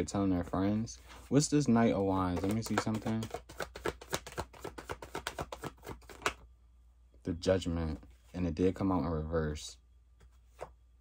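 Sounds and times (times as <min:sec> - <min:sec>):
cards being shuffled: 0:01.2 - 0:06.4.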